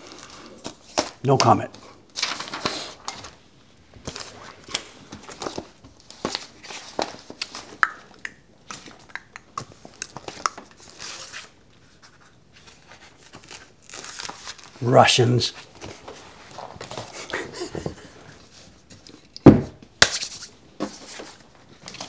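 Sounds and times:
paper rustling and crinkling: 0:00.0 - 0:07.8, 0:09.7 - 0:19.3, 0:20.1 - 0:22.0.

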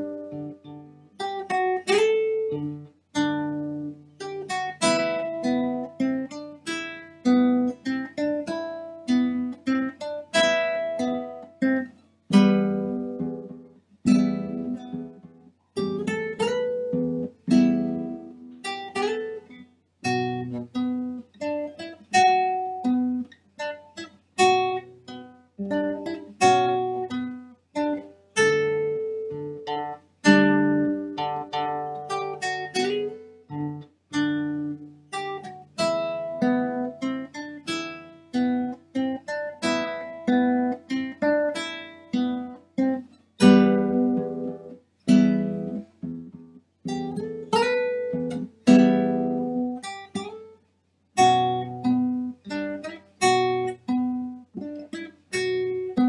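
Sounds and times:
classical guitar playing: 0:00.0 - 0:56.0.

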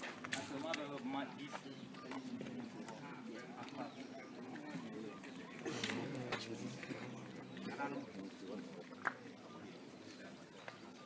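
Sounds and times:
faint voices talking: 0:00.0 - 0:11.0.

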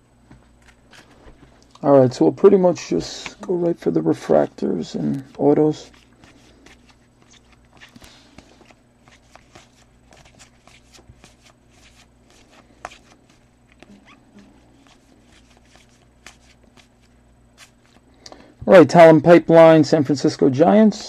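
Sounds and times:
low room hum: 0:00.0 - 0:21.0
cards clicking and sliding: 0:05.2 - 0:14.2, 0:14.8 - 0:18.0.

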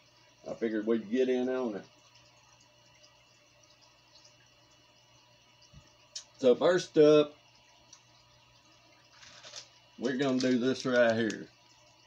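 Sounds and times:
plastic bag rustling: 0:09.1 - 0:11.4.

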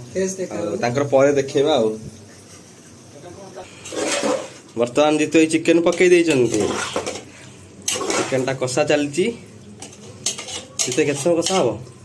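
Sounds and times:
metal spoon scraping pot: 0:03.8 - 0:04.6, 0:05.8 - 0:08.5, 0:09.8 - 0:11.8.

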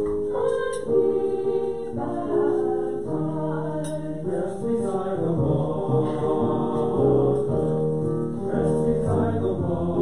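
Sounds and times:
slow chant-like singing: 0:00.3 - 0:10.0.

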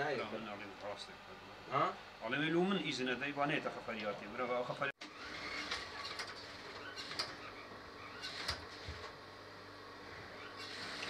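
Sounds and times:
sewing machines running: 0:05.0 - 0:09.1, 0:10.3 - 0:11.0.

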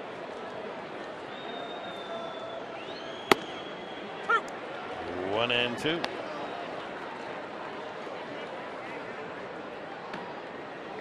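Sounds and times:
ballpark crowd murmur: 0:00.0 - 0:11.0
baseball smacking into mitt: 0:03.3 - 0:03.6.

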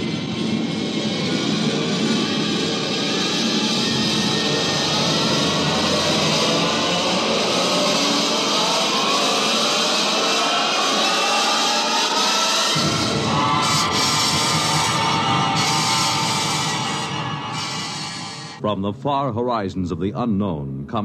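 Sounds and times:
rocket blast-off roar: 0:04.3 - 0:18.6.

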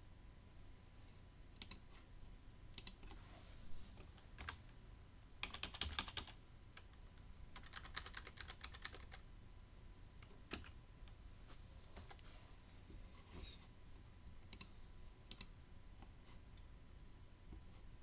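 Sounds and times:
typing on computer keyboard: 0:04.4 - 0:04.6, 0:05.4 - 0:07.0, 0:07.6 - 0:09.2, 0:10.5 - 0:10.8.

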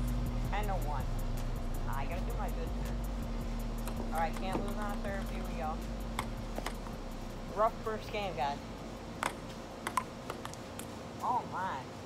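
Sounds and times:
table tennis ball clicking: 0:06.1 - 0:07.0, 0:09.2 - 0:10.9.

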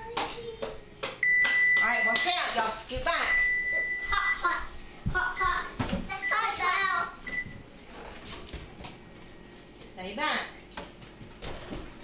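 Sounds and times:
high steady timer beep: 0:01.2 - 0:02.3, 0:03.2 - 0:04.4.

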